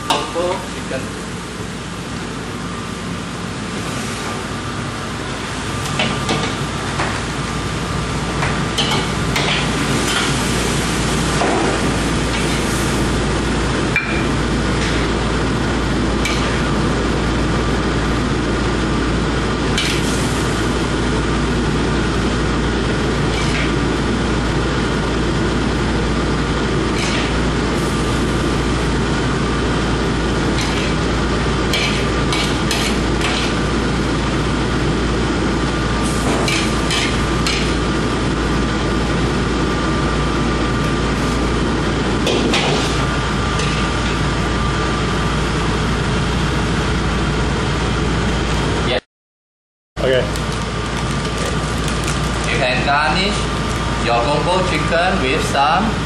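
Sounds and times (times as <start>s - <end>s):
kitchen machinery drone: 0.0s - 49.0s, 50.0s - 56.0s.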